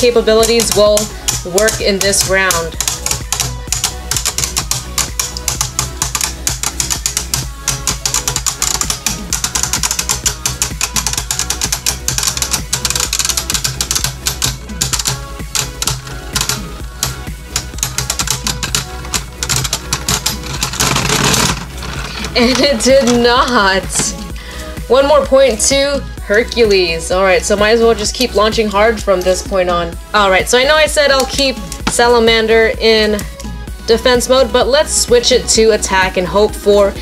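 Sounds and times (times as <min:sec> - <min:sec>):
spinning tops clicking and grinding: 0:00.0 - 0:24.4, 0:30.9 - 0:32.2.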